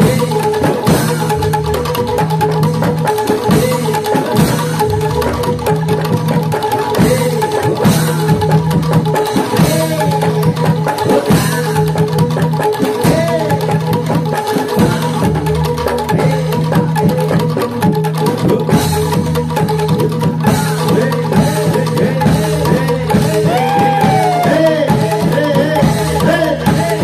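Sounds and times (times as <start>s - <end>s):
clacking percussion: 0.0s - 27.0s.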